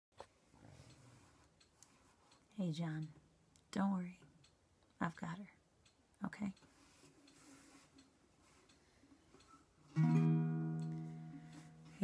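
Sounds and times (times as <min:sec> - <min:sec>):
ukulele chord strummed: 0:09.9 - 0:12.0.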